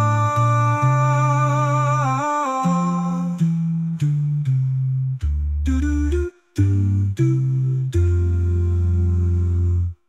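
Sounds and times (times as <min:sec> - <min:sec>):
low bass voice humming: 0:00.0 - 0:10.0.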